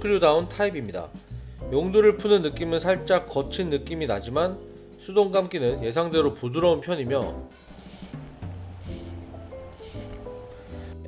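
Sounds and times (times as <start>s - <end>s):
background music: 0.0s - 11.0s
watch crown ratcheting: 7.6s - 10.5s.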